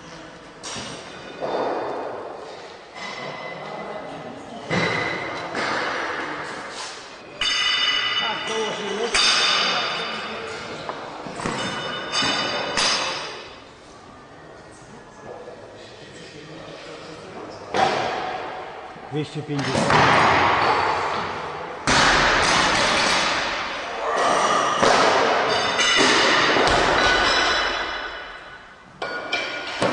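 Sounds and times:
barbell plates clanking: 22.4 - 29.9.

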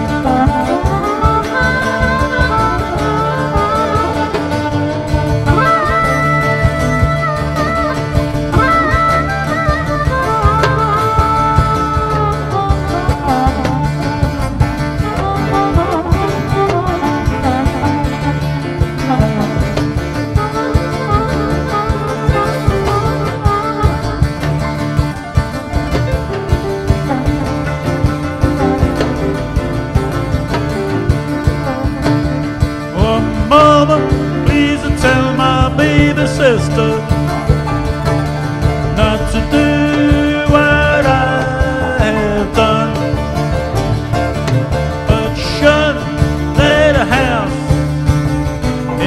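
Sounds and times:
drum beat: 0.0 - 49.0
harmonica solo: 0.0 - 49.0
keyboards: 0.0 - 49.0
upright bass: 0.0 - 49.0.

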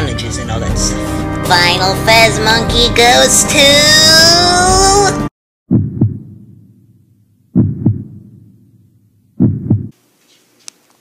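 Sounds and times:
heartbeat thumps: 5.7 - 6.7, 7.5 - 8.6, 9.4 - 10.0.

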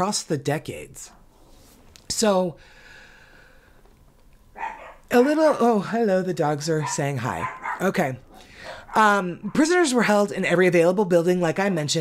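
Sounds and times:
dog whining: 4.5 - 5.2, 6.8 - 9.6
dog barking: 4.6 - 5.4, 6.8 - 9.8.

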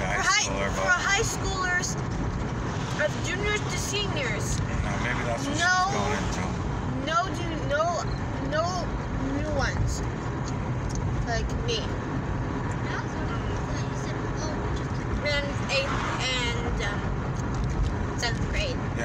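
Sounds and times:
person speaking: 0.0 - 1.8, 3.0 - 7.5
car road and engine noise: 0.0 - 19.0.

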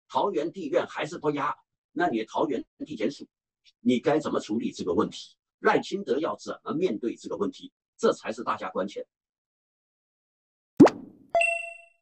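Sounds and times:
cartoon plop rising in pitch: 10.8 - 11.5
bright bell-like ding: 11.4 - 12.0.

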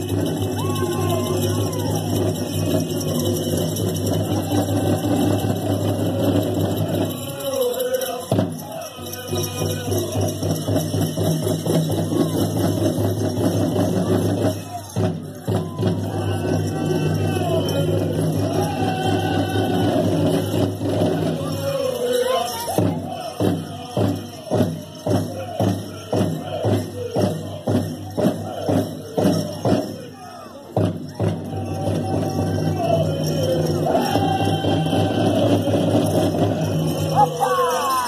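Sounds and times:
group singing high vocables: 0.0 - 38.0.

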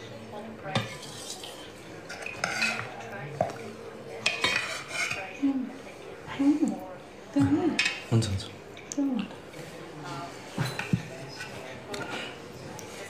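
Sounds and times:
dishes clinking and knocking: 4.2 - 5.2, 10.5 - 12.4.

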